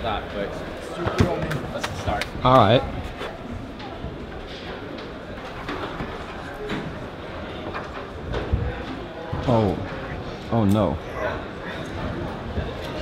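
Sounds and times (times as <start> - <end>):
background chatter of voices: 0.0 - 13.0.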